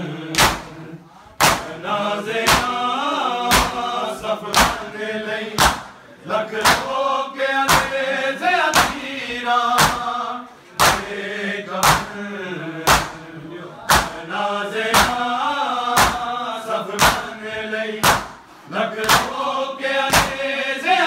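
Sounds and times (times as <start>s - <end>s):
men chanting in unison: 0.0s - 21.0s
hands slapping chests: 0.3s - 0.8s, 1.4s - 1.8s, 2.4s - 2.8s, 3.5s - 3.9s, 4.5s - 4.9s, 5.6s - 6.0s, 6.6s - 7.0s, 7.7s - 8.0s, 8.7s - 9.0s, 9.8s - 10.1s, 10.8s - 11.2s, 11.8s - 12.2s, 12.8s - 13.3s, 13.9s - 14.2s, 14.9s - 15.2s, 16.0s - 16.3s, 17.0s - 17.3s, 18.0s - 19.4s, 20.1s - 20.4s.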